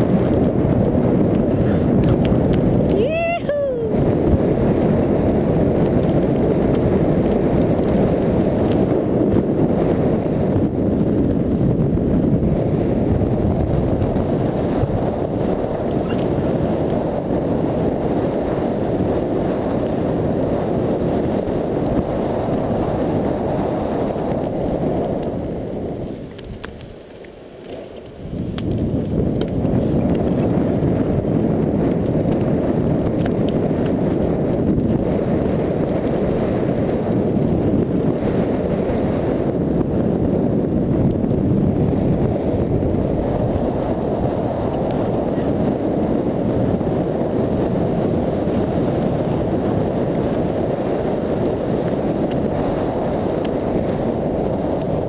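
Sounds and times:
wheels rolling over sand: 0:00.0 - 0:55.0
wind rush: 0:00.0 - 0:55.0.

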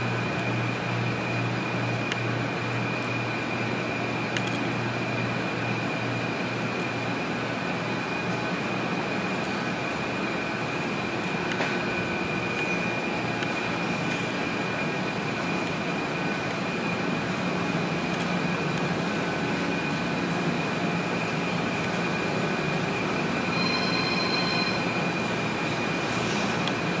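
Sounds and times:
machine noise with high whine: 0:00.0 - 0:27.0
higher tone: 0:23.4 - 0:25.0.

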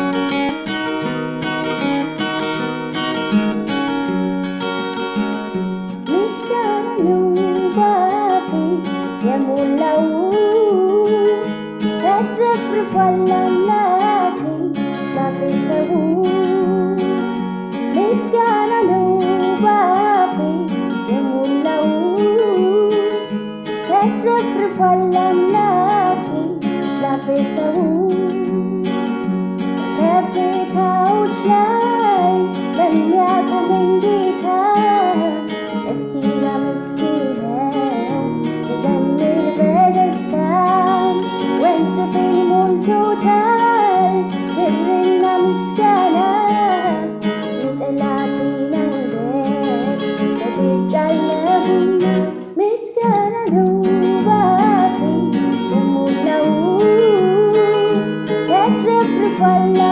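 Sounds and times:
strummed acoustic guitar: 0:00.0 - 0:59.9
woman singing with vibrato: 0:06.0 - 0:29.2, 0:29.8 - 0:59.9.

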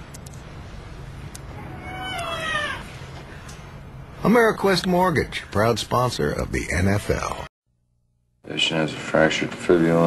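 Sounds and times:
cat meowing: 0:01.6 - 0:02.9.

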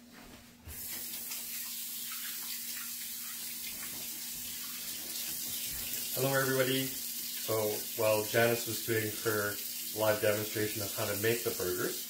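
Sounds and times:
hands washing under water: 0:00.7 - 0:12.0.

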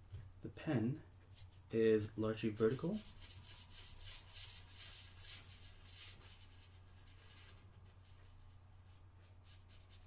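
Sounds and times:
marker rubbing on paper: 0:03.0 - 0:10.0.

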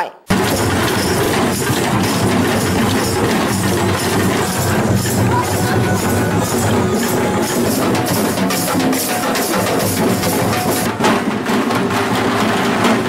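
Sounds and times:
barrel drums in fast rhythm: 0:00.3 - 0:13.0.

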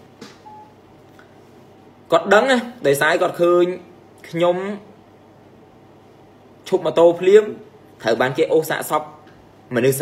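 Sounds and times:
faint electronic beep: 0:00.4 - 0:00.8.

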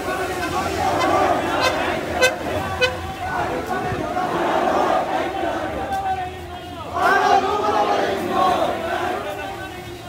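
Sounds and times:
horn tooting: 0:00.0 - 0:04.0
marching crowd voices: 0:00.0 - 0:10.0.

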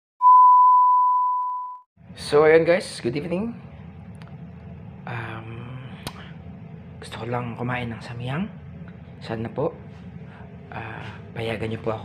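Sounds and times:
high pure test tone beep: 0:00.2 - 0:01.9.

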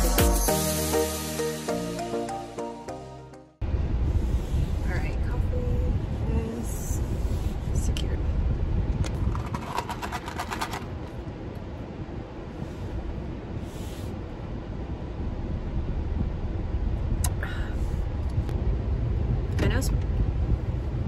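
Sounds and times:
car cabin low rumble: 0:03.6 - 0:09.4, 0:11.2 - 0:21.0.

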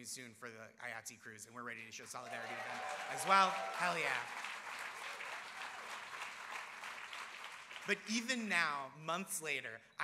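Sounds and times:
audience applauding: 0:02.3 - 0:08.4.

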